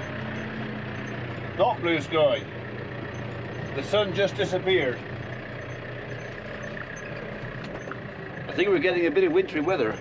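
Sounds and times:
tractor engine running: 0.0s - 10.0s.

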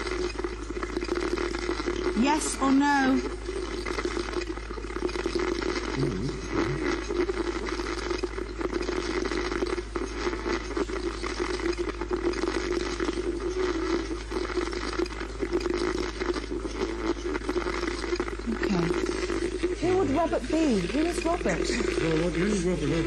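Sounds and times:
crackling radio static: 0.0s - 23.0s
steady hum: 0.0s - 23.0s.

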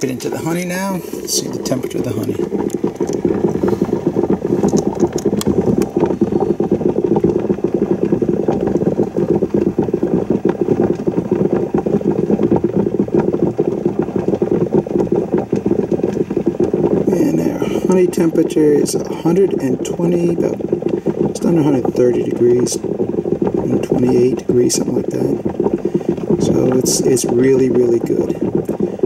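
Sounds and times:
steady low hum: 0.0s - 29.0s.

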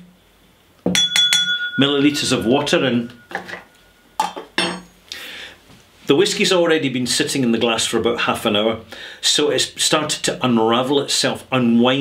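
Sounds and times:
spoon clinking on glass: 0.9s - 4.9s.

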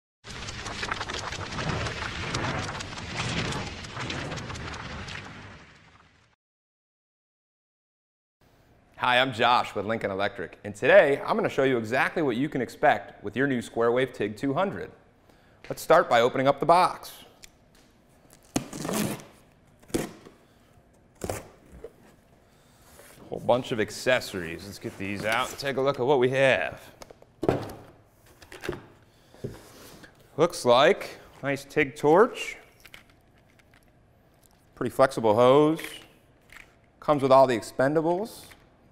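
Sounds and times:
welding arc crackling: 0.3s - 5.9s
packing tape ripping: 18.3s - 20.3s.

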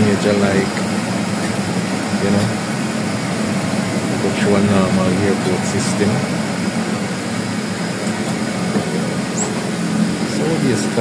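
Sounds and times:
turboprop engine drone: 0.0s - 11.0s.

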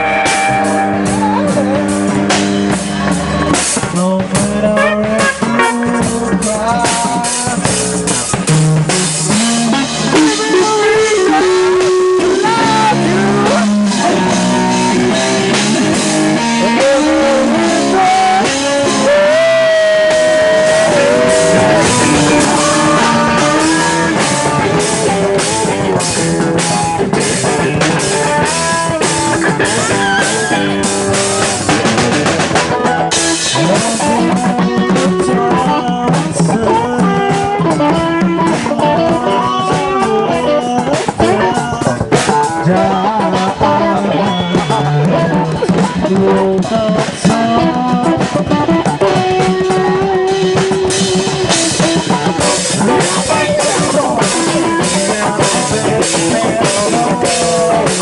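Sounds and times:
drums: 0.0s - 58.0s
electric guitar: 0.0s - 58.0s
hand drums: 0.0s - 58.0s.

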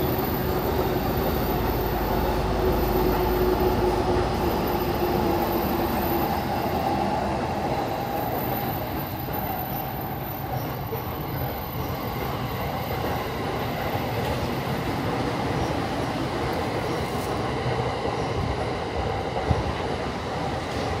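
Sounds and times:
train running on tracks: 0.0s - 21.0s.

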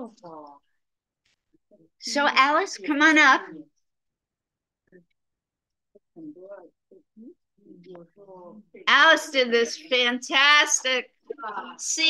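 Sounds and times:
faint speech over video call: 0.0s - 12.0s.

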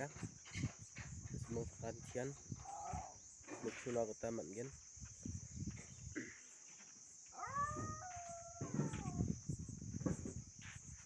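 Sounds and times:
insects droning: 0.0s - 11.0s
animal call: 2.6s - 3.2s, 7.3s - 9.2s.

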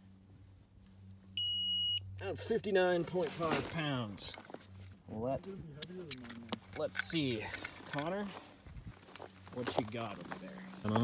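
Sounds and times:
high-pitched electronic beep: 1.4s - 2.0s.

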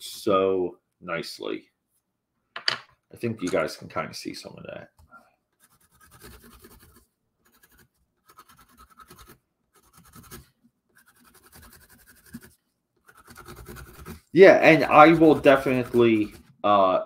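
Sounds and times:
pencil scratching on cardboard: 5.6s - 16.6s.

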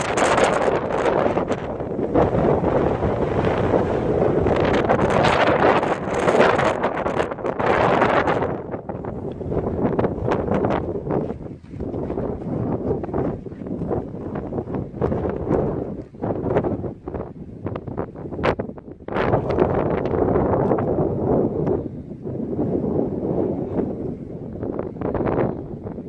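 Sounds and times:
wind buffeting microphone: 0.0s - 26.0s.

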